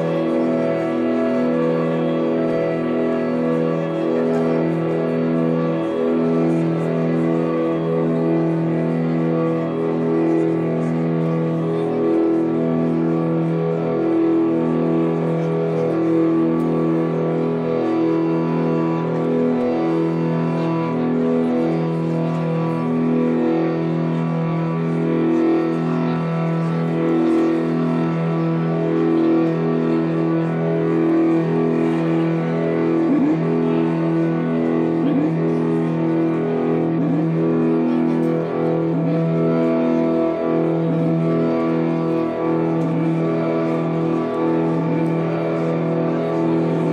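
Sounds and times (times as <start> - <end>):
ambient drone music: 0.0 - 46.9.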